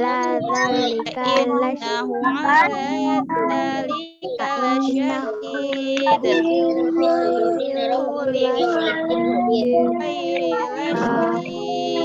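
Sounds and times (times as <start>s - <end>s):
child chanting melodic recitation: 0.0s - 12.0s.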